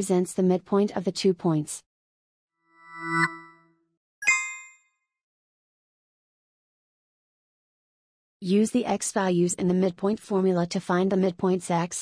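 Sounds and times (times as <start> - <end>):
low electronic chime: 2.8 - 4.8
sharp high ding: 4.2 - 4.8.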